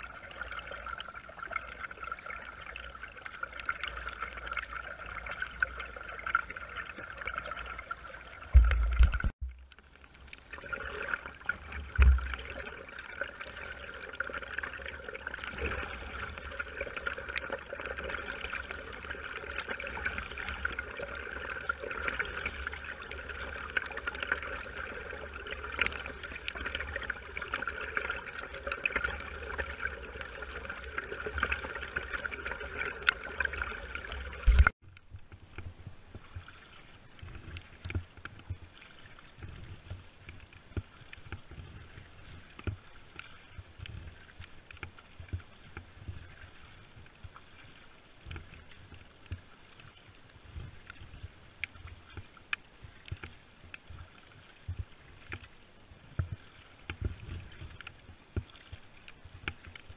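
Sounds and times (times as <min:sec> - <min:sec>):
rain pattering on deck and water: 0:00.0 - 0:59.9.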